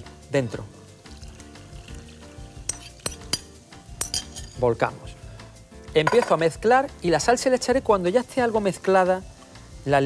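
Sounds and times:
soft background music: 0:00.0 - 0:10.0
porcelain bowl clinking on glass: 0:02.7 - 0:04.6, 0:06.0 - 0:06.4.

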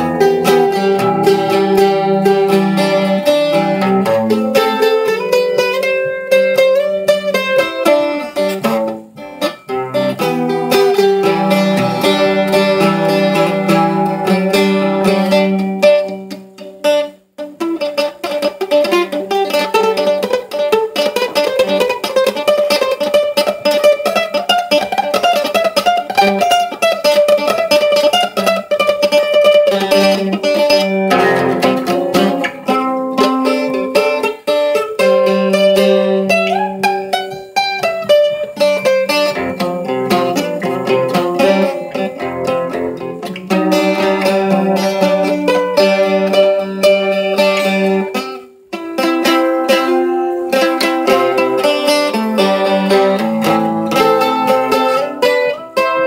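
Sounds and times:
mandolin picked melody: 0:00.0 - 0:56.0.

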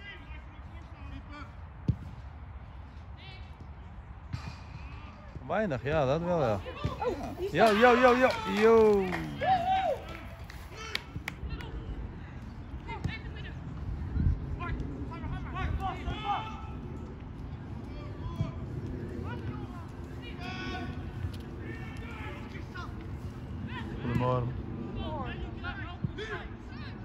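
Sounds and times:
distant players shouting: 0:06.4 - 0:12.0, 0:15.1 - 0:16.8, 0:17.8 - 0:26.8
wind rumble on microphone: 0:09.4 - 0:27.0.

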